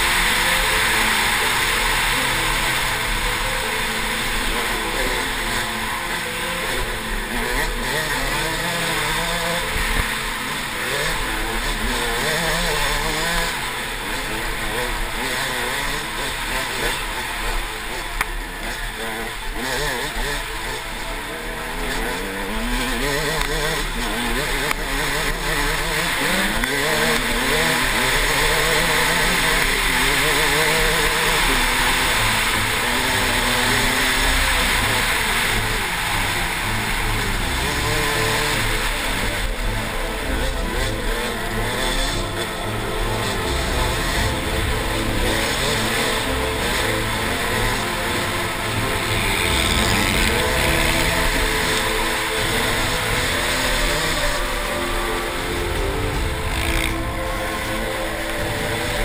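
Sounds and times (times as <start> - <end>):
dirt bike engine revving: 0.0 - 59.0.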